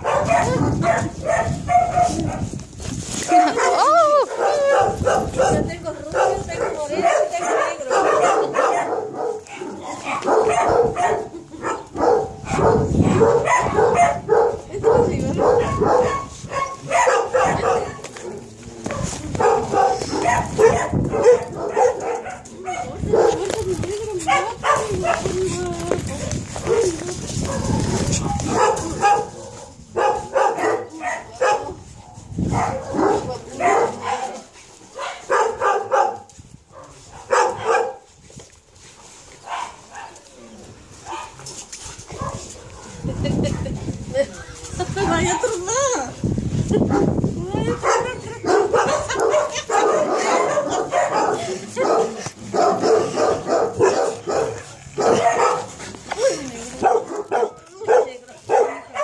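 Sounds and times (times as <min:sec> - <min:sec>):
woman's voice: 0:03.3 - 0:08.8, 0:14.5 - 0:16.1, 0:17.3 - 0:18.0, 0:22.7 - 0:27.6, 0:43.2 - 0:46.2, 0:46.8 - 0:48.9, 0:56.2 - 0:59.0
puppies yipping and barking: 0:47.8 - 0:52.0.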